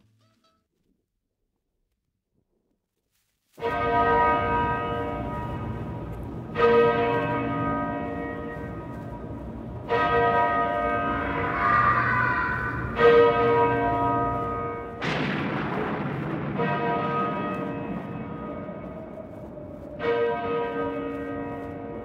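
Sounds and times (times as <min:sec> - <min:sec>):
large bell tolling: 0:03.6 - 0:22.0.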